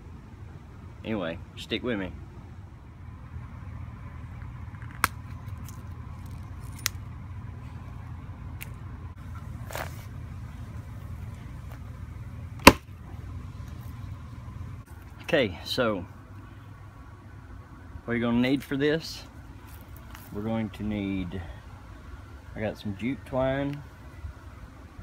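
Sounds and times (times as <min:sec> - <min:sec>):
paving machinery engine rumble: 0:00.0 - 0:25.0.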